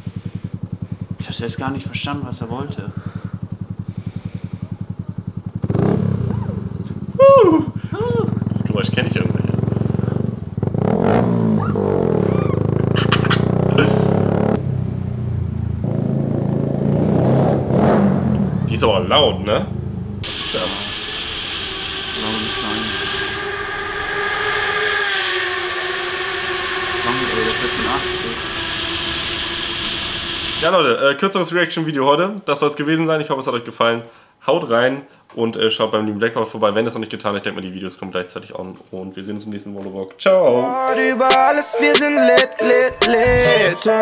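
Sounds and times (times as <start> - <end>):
motorcycle engine running: 0.0 - 30.7
loud cry falling in pitch: 11.6 - 14.2, 22.0 - 29.6
wind rushing: 20.2 - 30.7.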